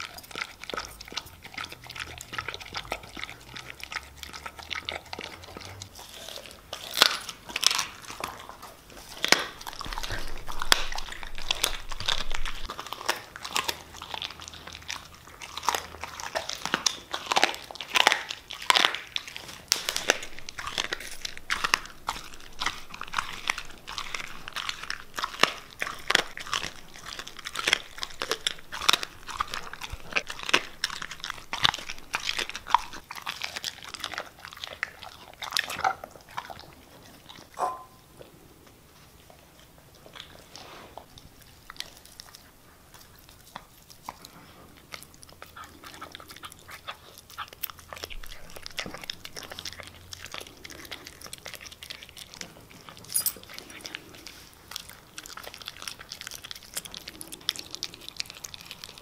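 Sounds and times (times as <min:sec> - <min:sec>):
dog chewing crunching bones: 0:00.0 - 0:59.0.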